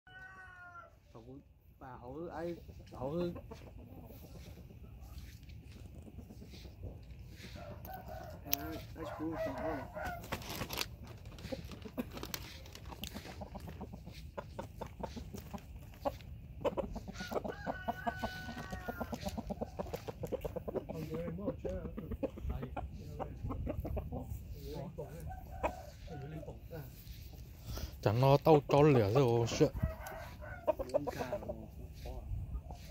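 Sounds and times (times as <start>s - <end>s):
rooster crowing: 0.1s - 1.0s, 7.4s - 10.5s, 17.1s - 19.4s, 29.6s - 31.3s
chickens clucking: 0.1s - 32.9s
person speaking: 0.4s - 14.5s, 15.1s - 32.9s.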